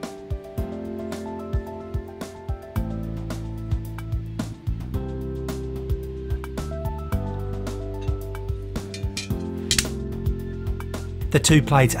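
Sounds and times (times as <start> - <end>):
instrumental music: 7.0 - 10.6
brass plates clinking: 8.9 - 9.9
metal scrape: 8.9 - 10.0.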